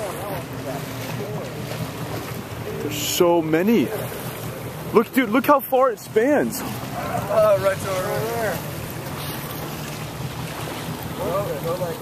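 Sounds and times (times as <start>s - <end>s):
faint voices: 0.0s - 9.7s
boat motor running: 0.0s - 12.0s
sea water: 0.0s - 12.0s
wind: 0.0s - 12.0s.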